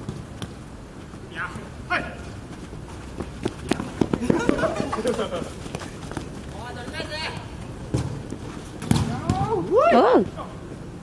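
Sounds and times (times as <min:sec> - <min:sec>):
footfalls on artificial turf: 0:00.0 - 0:09.8
laughter: 0:04.2 - 0:05.6
ball touches: 0:07.3 - 0:09.7
person shouting: 0:09.3 - 0:10.3.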